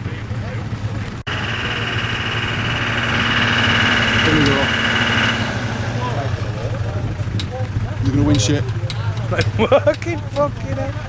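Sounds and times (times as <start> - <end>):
vehicle engine idling: 0.0 - 11.0
high whine: 1.3 - 7.3.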